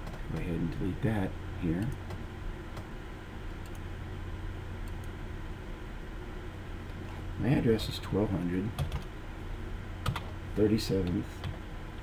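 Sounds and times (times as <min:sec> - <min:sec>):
steady low hum: 0:00.0 - 0:12.0
computer mouse clicks: 0:03.6 - 0:03.8.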